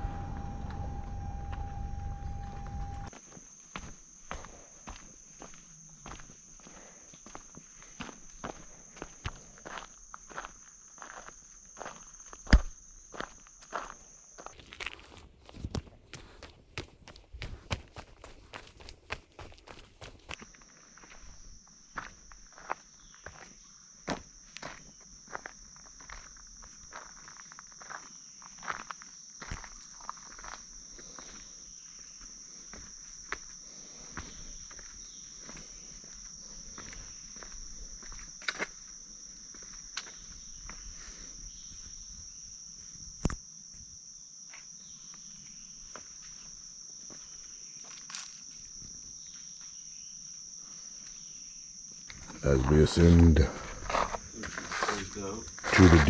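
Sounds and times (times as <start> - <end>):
footsteps on gravel trail: 0.0 - 31.5, 52.1 - 56.0
high insect drone: 0.0 - 56.0.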